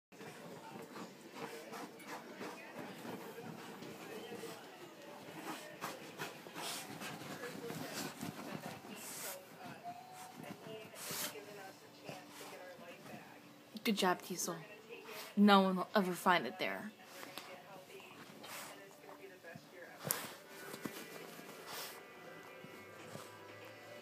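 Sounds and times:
dog sniffing and snuffling: 0.2 - 13.4, 14.9 - 15.4, 17.0 - 24.0.

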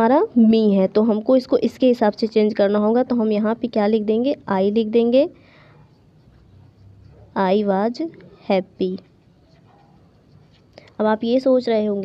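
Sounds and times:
marker scratching on paper: 4.4 - 12.0.

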